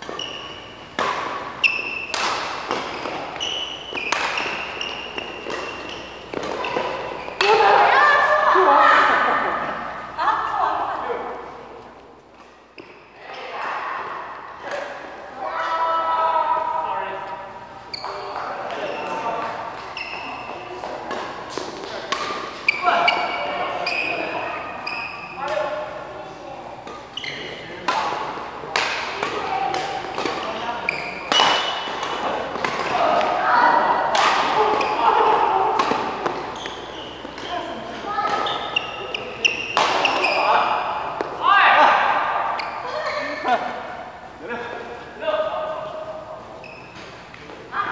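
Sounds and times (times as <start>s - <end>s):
shoes squeaking on court: 0.0s - 7.5s, 11.8s - 13.5s, 17.6s - 25.5s, 26.8s - 27.8s, 29.2s - 33.6s, 35.8s - 41.3s, 42.4s - 43.4s, 46.3s - 47.6s
rackets hitting shuttlecock: 0.0s - 7.9s, 18.0s - 25.8s, 26.8s - 42.8s
voices: 0.0s - 12.1s, 13.0s - 47.9s.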